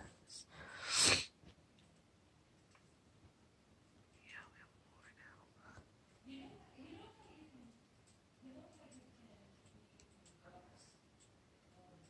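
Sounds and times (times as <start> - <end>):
woman whispering: 4.1 - 7.4.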